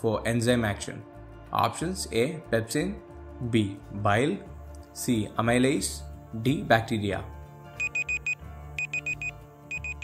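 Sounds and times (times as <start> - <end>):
soft background music: 0.0 - 10.0
high digital beeps: 7.8 - 10.0.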